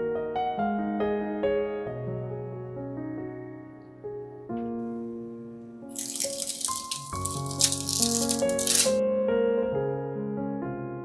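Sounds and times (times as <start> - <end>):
plastic film crinkling: 6.0 - 9.0.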